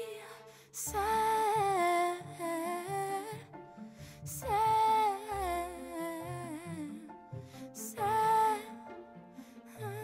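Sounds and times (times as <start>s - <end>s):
woman's wordless vocal: 0.0s - 8.9s
soft pop ballad accompaniment: 0.8s - 10.0s.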